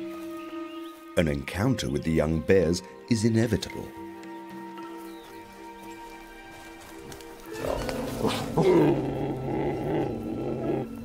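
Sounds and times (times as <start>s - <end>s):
background music: 0.0s - 11.0s
animal growling call: 7.5s - 11.0s.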